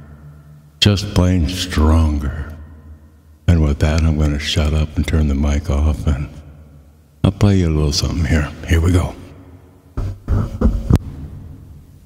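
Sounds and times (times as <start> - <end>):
low hum: 0.0 - 12.0
microphone handling thumps: 9.9 - 11.6.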